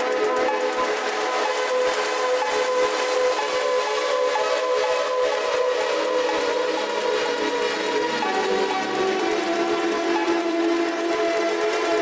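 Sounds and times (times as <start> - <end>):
electronic dance music synth chords: 0.0 - 12.0.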